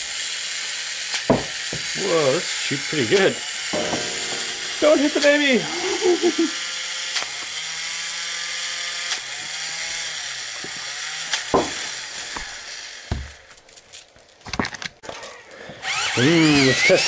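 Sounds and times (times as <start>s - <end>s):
toy robot motor whirring: 15.3s - 17.0s.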